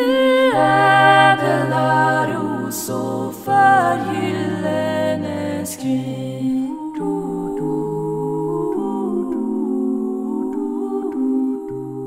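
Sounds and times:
women humming in harmony: 0:06.7 - 0:12.0.

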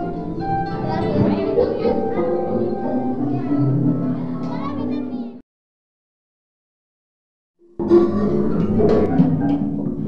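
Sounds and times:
children's voices: 0:00.0 - 0:05.4.

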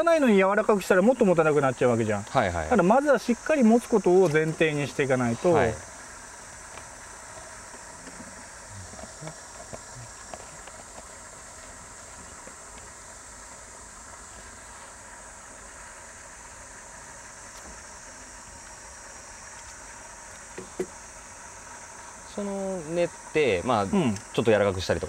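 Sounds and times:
high-pitched insect drone: 0:00.0 - 0:25.0.

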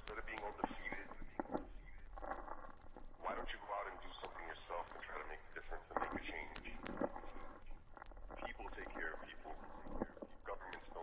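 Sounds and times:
muffled indistinct speech: 0:00.0 - 0:02.5, 0:03.1 - 0:11.0
faint clicks: 0:00.0 - 0:11.0.

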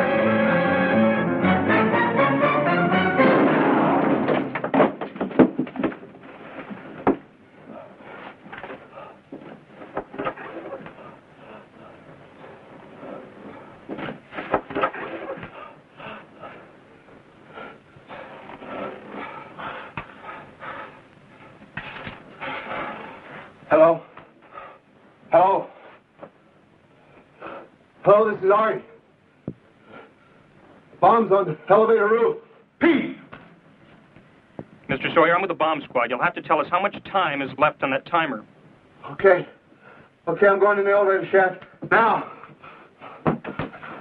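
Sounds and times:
music: 0:00.0 - 0:04.4.

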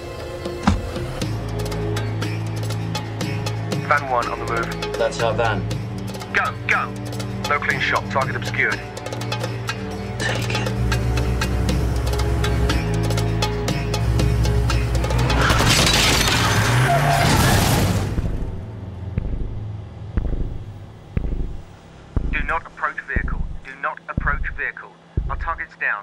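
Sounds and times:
dramatic film score: 0:00.0 - 0:25.8
low thumps: 0:17.9 - 0:25.6.

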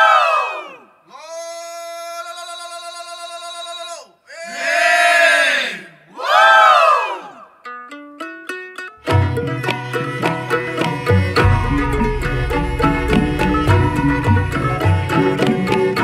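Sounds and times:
chorus of voices crying out: 0:04.3 - 0:07.5
plucked string instrument run: 0:07.7 - 0:16.0
steady held tone: 0:10.8 - 0:16.0.

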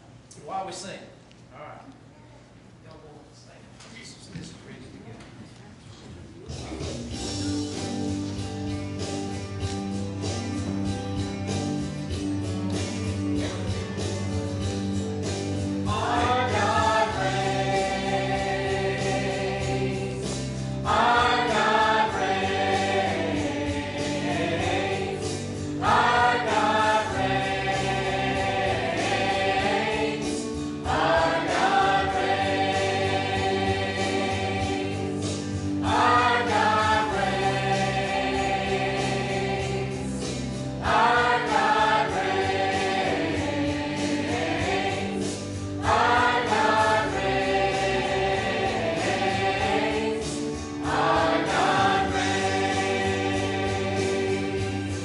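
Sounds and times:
choir singing gospel: 0:07.2 - 0:55.0.

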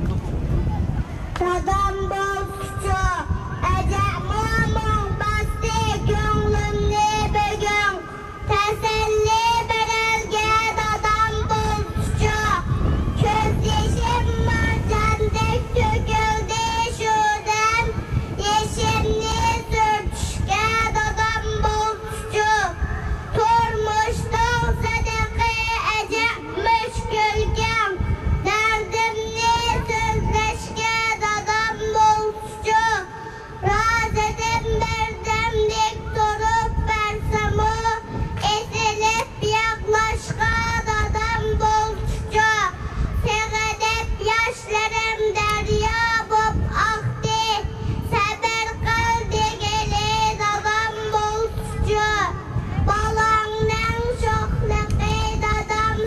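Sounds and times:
boy chanting through loudspeaker: 0:00.0 - 0:56.0.

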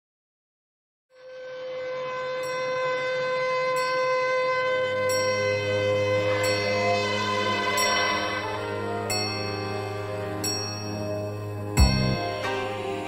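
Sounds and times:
bell-like chime tones: 0:05.1 - 0:12.9
low bass note: 0:11.0 - 0:12.5.

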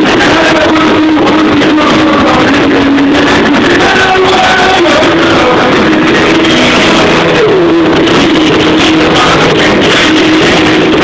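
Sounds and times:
live concert music: 0:00.0 - 0:11.0.

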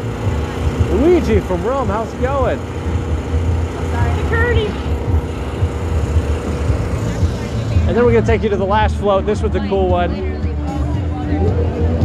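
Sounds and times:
engine running: 0:00.0 - 0:12.0.

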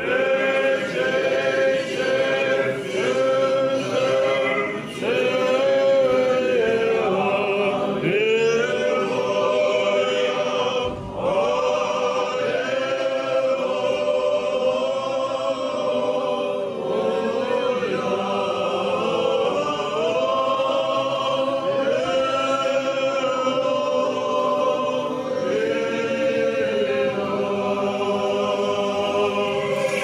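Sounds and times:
choir singing sacred chant: 0:00.0 - 0:30.0.

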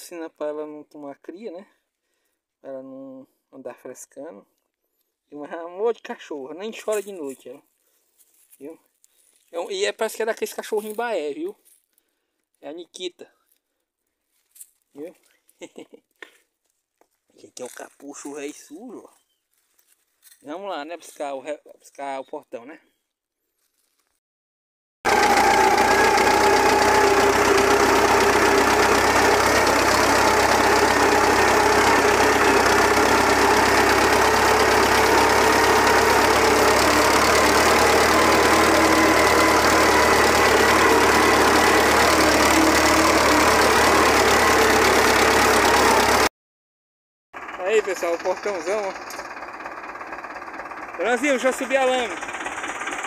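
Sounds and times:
tractor diesel engine running: 0:25.1 - 0:46.3, 0:47.4 - 0:53.0.

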